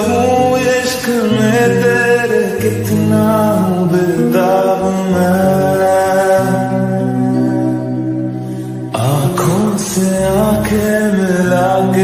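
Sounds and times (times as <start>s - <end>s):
slow sad lofi song: 0.0s - 12.0s.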